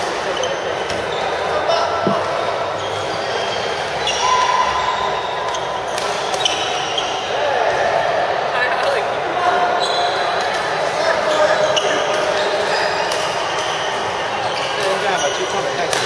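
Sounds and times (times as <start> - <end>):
shoes squeaking on floor: 0.0 - 7.3, 9.8 - 10.3, 11.2 - 16.0.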